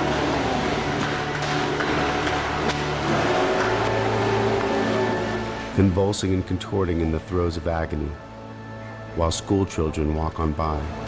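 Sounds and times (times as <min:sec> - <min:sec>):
music of low sustained chords: 0:00.0 - 0:11.0.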